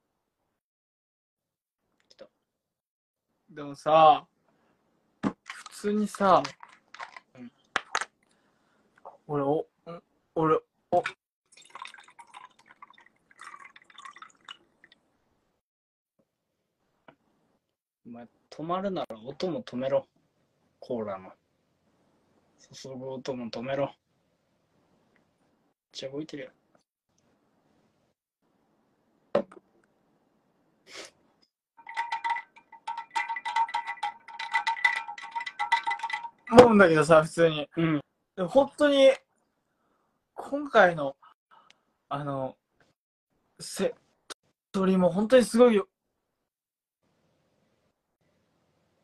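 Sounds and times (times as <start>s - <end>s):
cola fizzing while poured: 11.5s - 15.0s
clinking against drinking glass: 31.8s - 36.5s.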